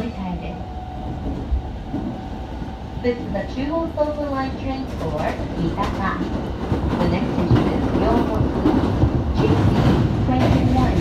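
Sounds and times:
train wheels rumbling on rails: 0:00.0 - 0:11.0.

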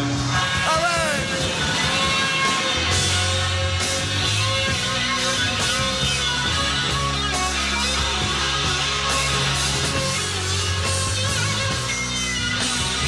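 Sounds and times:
electric guitar: 0:00.0 - 0:13.0
rock band playing live: 0:00.0 - 0:13.0.

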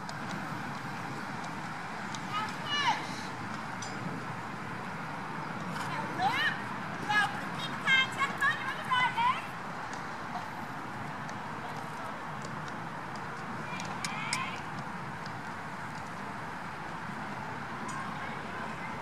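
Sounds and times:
outdoor noise: 0:00.0 - 0:19.0.

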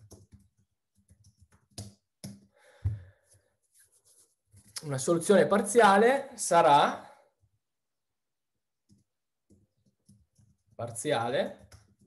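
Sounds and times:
man speaking: 0:04.8 - 0:07.1, 0:10.8 - 0:11.6.

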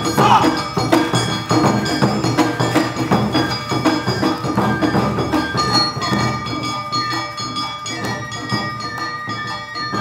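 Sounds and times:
drums striking: 0:00.0 - 0:06.6
flute and strings melody: 0:03.4 - 0:06.6.

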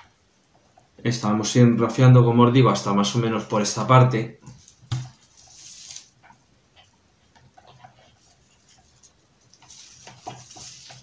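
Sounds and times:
raffia rustling on branch: 0:04.5 - 0:06.2, 0:08.2 - 0:11.0.

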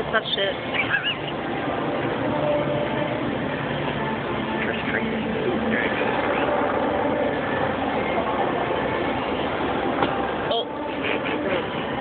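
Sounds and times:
indistinct voices: 0:00.0 - 0:12.0
vehicle engine noise: 0:00.0 - 0:12.0.

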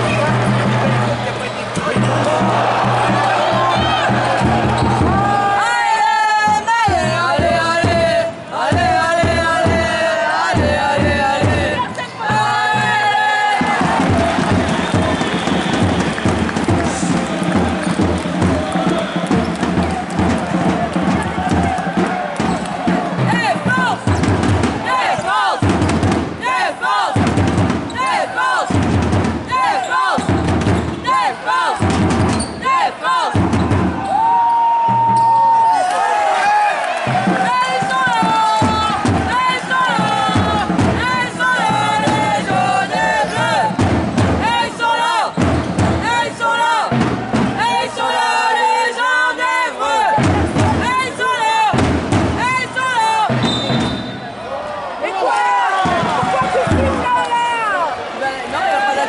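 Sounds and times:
crowd singing or chanting: 0:00.0 - 0:34.0, 0:37.1 - 0:53.8
music with thudding beat: 0:01.8 - 0:25.0, 0:25.6 - 0:26.4, 0:27.2 - 0:28.0, 0:28.7 - 0:29.6, 0:30.2 - 0:31.1, 0:31.8 - 0:32.6, 0:33.4 - 0:34.2, 0:37.1 - 0:46.3, 0:46.9 - 0:47.8, 0:50.2 - 0:51.1, 0:51.7 - 0:52.6, 0:53.2 - 0:54.2.

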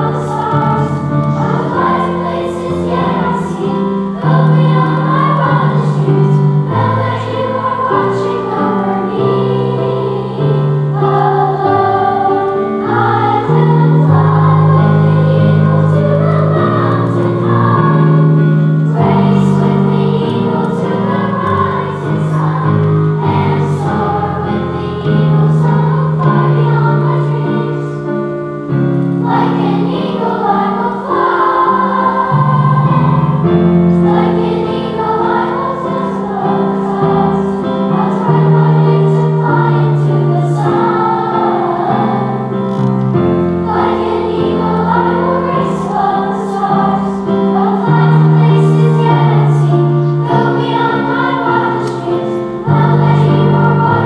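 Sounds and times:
children's choir singing: 0:00.0 - 0:54.0
long low accompaniment notes: 0:00.0 - 0:54.0.

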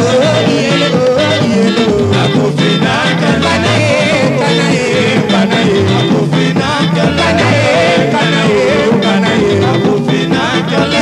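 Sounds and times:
bass line: 0:00.0 - 0:11.0
drums and percussion: 0:00.0 - 0:11.0
person singing: 0:00.0 - 0:11.0
rumba band music: 0:00.0 - 0:11.0.

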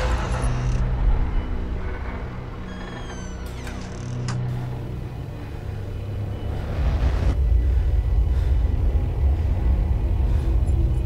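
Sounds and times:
horror film score drone: 0:00.0 - 0:11.0.

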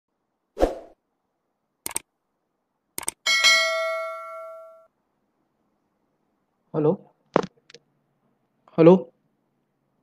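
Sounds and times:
mouse clicks: 0:01.8 - 0:02.1, 0:03.0 - 0:03.2
bell ding: 0:03.3 - 0:04.9.

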